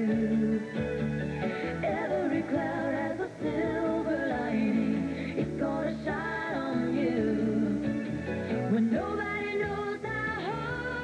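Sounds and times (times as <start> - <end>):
instrumental backing: 0.0 - 11.0.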